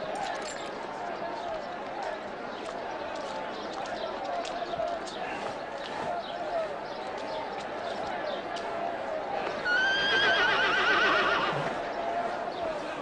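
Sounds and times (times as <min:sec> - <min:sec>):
murmur of voices: 0:00.0 - 0:13.0
horse whinnying: 0:09.7 - 0:11.7.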